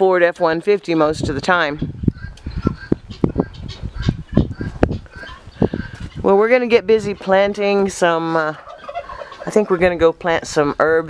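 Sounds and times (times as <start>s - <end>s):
faint fowl calls: 2.1s - 6.3s, 8.2s - 9.9s.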